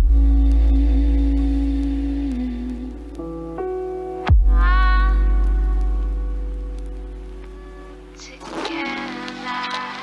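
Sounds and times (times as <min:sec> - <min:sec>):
deep bass note: 0:00.0 - 0:03.7, 0:04.3 - 0:07.5.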